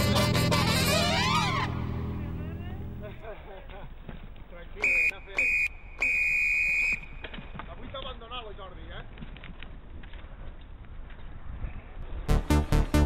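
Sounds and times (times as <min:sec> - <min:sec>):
shrill high tone blasts: 0:04.8 - 0:07.2.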